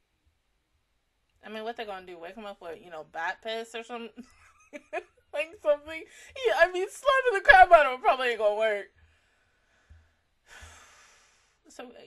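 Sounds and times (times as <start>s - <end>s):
soft breathy sigh: 9.7s - 11.6s.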